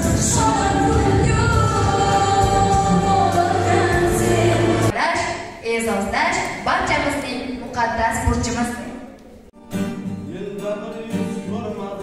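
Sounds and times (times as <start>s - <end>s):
musical accompaniment: 0.0s - 4.9s, 9.6s - 12.0s
woman singing into microphone: 0.0s - 4.9s.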